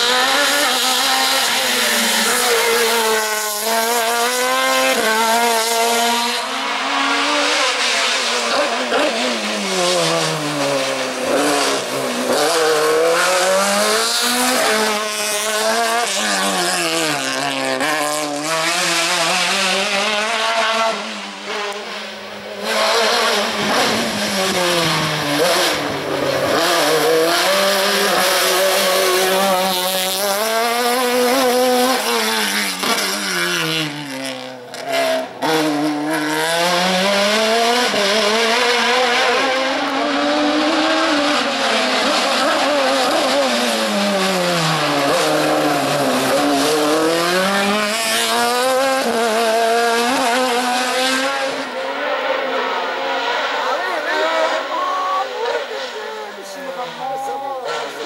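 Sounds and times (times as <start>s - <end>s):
racing car engine revving: 0.0s - 58.0s.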